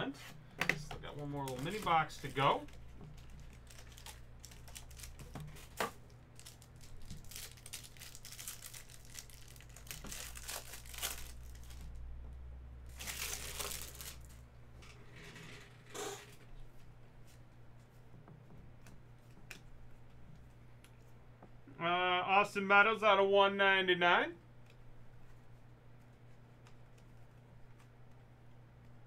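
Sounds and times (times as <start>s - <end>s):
plastic wrapper tearing and crinkling: 1.3s - 12.0s, 12.9s - 14.4s.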